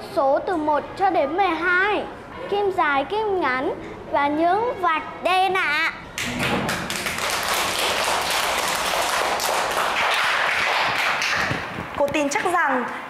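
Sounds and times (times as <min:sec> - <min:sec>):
children clapping: 0:06.2 - 0:11.8.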